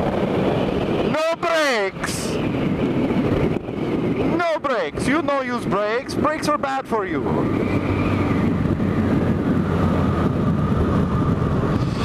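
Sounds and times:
wind and road noise: 0.0 - 12.0
motorcycle engine cruising: 6.0 - 12.0.

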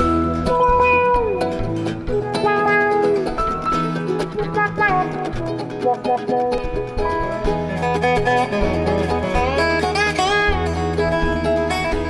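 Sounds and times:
bass: 0.0 - 12.0
slide dobro notes: 0.0 - 12.0
steady rhythmic chop: 0.0 - 12.0.

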